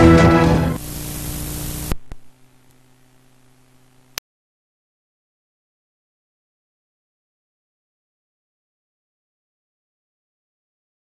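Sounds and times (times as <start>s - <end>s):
news theme music: 0.0s - 0.8s
hiss with low hum: 0.8s - 4.2s.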